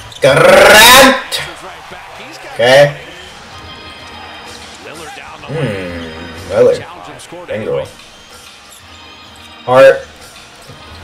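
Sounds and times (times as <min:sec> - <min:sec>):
arena crowd noise: 0:00.0 - 0:08.7.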